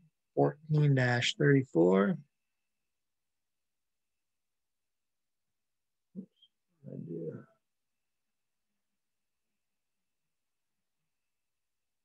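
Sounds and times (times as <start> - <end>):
man speaking: 0.4 - 2.3, 6.9 - 7.4.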